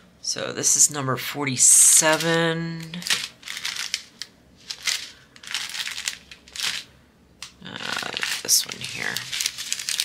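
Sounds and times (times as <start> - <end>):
plastic wrapping crinkling: 2.0 - 6.9, 7.6 - 10.0.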